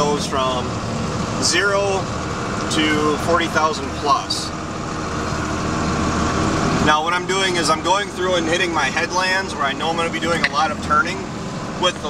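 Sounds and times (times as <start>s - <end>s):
tractor engine droning: 0.0s - 12.0s.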